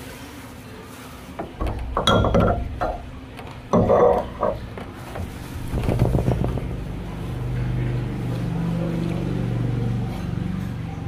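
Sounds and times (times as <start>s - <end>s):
low motor hum: 1.4s - 11.0s.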